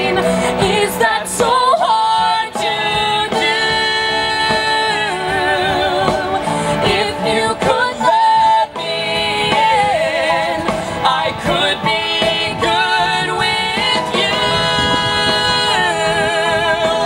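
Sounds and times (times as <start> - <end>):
backing music: 0.0 - 17.0
woman singing with vibrato: 0.0 - 17.0.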